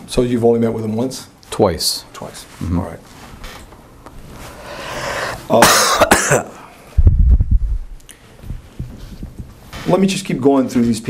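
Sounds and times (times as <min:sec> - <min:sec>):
rising breath: 0:04.5 - 0:05.5
man coughing: 0:05.5 - 0:06.6.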